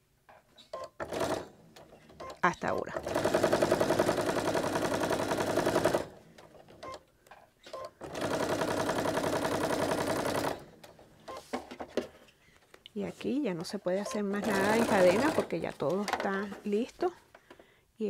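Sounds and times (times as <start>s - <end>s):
electric sewing machine stitching: 3.0s - 6.2s, 8.0s - 10.7s, 14.3s - 15.5s.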